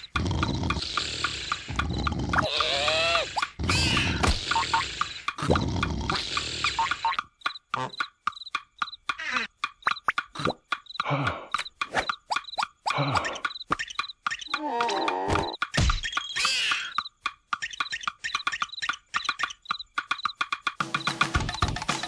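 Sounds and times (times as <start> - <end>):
cartoon snoring noises: 0.0 - 7.2
light steady ticking: 0.0 - 22.0
sharp clicks: 0.0 - 22.0.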